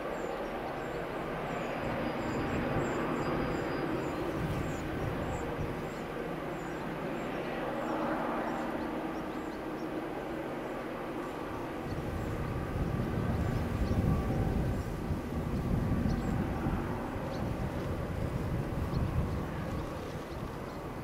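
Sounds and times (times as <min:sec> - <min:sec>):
distant train rumble: 0:00.0 - 0:21.0
faint steady engine tones: 0:00.0 - 0:21.0.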